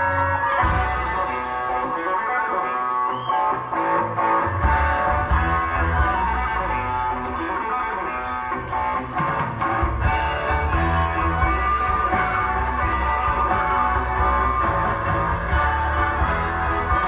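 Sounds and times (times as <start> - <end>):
live rock band with orchestra: 0.0 - 17.0.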